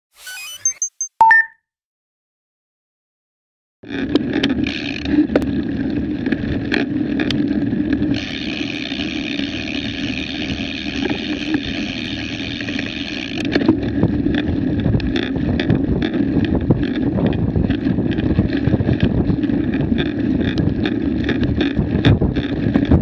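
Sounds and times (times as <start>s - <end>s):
wind buffeting microphone: 13.8s - 23.0s.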